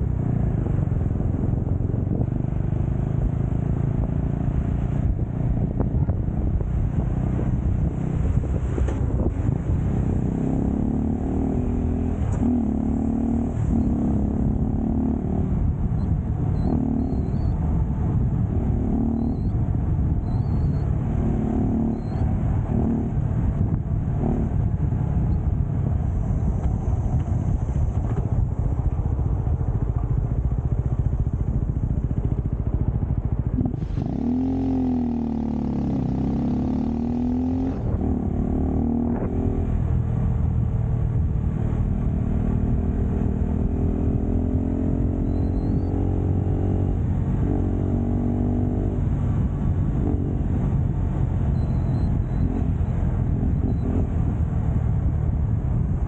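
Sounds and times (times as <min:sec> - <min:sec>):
motorcycle engine running: 0:00.0 - 0:56.0
wind rumble on microphone: 0:00.0 - 0:56.0.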